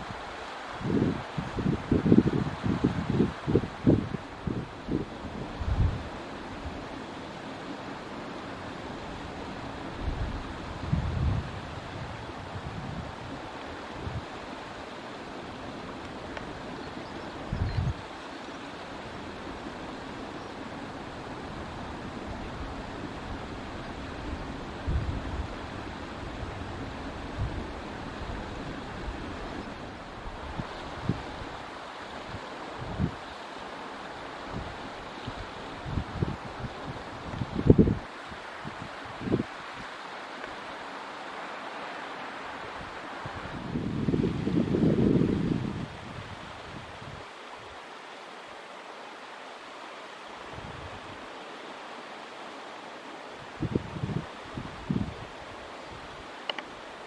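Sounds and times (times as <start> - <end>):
wind buffeting microphone: 0.8 - 6.8, 9.8 - 14.4, 16.0 - 18.1, 34.5 - 39.9, 42.6 - 47.3, 53.4 - 55.4.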